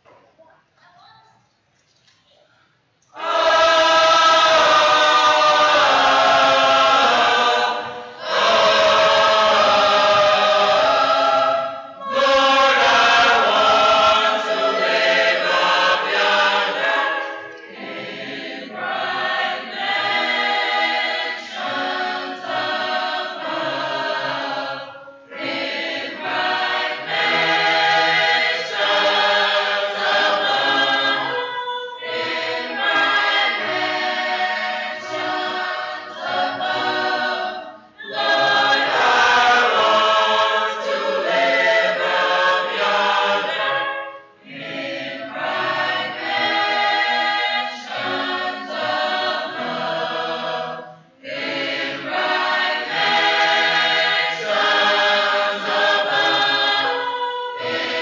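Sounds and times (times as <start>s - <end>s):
mixed choir singing: 3.1s - 58.0s.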